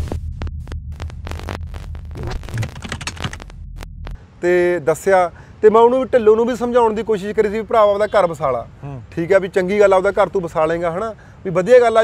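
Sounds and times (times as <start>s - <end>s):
glitchy clicks and stutters: 0.0s - 4.2s
low electronic hum: 0.0s - 4.4s.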